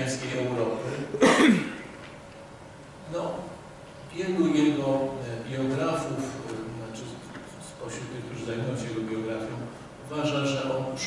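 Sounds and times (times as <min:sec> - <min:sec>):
man clearing throat: 0:01.1 - 0:01.9.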